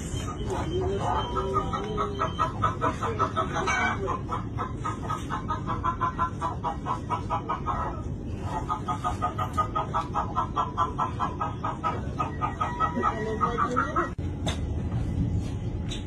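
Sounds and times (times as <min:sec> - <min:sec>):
chicken clucking: 0:00.0 - 0:14.2
steady low rumble: 0:00.0 - 0:16.0.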